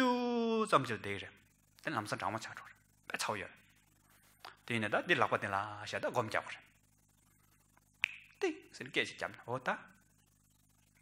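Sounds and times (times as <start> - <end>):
finger snap: 8.0 - 8.4.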